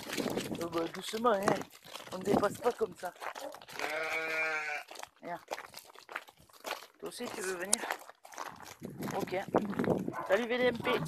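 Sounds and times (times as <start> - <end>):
sheep bleating: 3.4 - 5.0.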